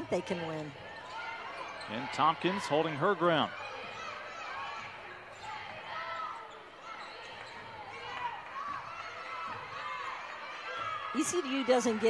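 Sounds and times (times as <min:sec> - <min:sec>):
sneakers squeaking: 0:00.0 - 0:12.0.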